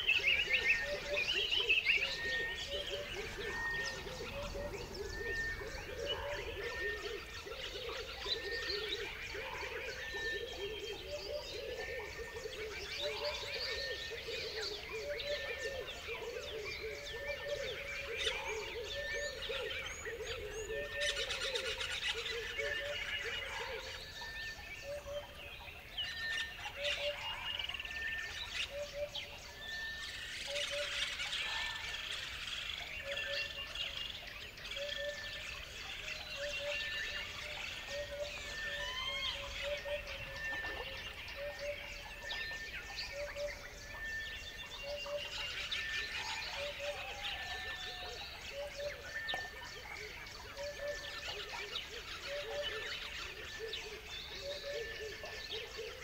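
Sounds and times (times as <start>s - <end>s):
birds chirping and singing: 0.0s - 56.0s.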